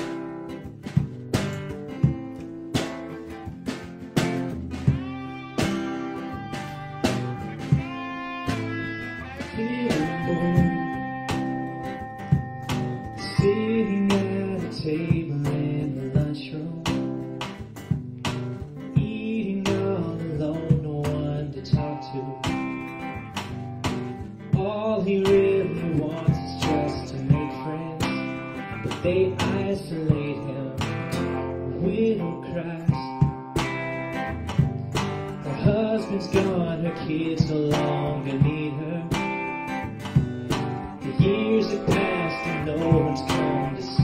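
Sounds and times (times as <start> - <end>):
live country-rock band: 0.0 - 44.0
strummed acoustic guitar: 0.0 - 44.0.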